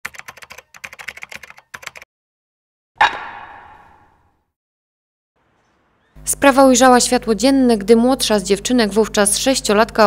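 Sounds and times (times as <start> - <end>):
keyboard typing clicks: 0.1 - 2.0.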